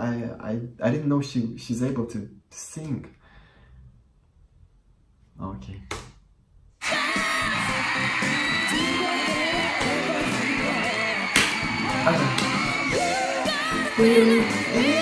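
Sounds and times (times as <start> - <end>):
girl singing pop song with band: 12.9 - 15.0.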